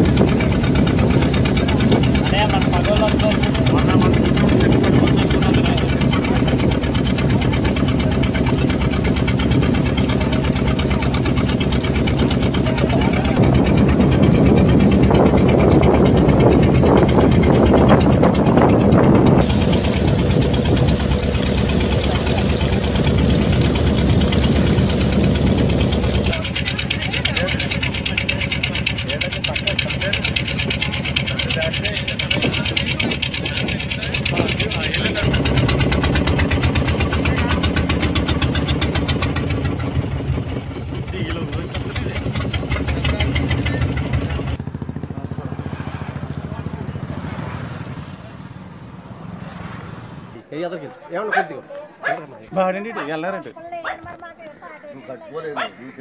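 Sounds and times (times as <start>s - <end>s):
engine running steadily: 0.0s - 50.5s
people's voices: 1.2s - 18.7s, 19.4s - 38.8s, 49.1s - 56.0s.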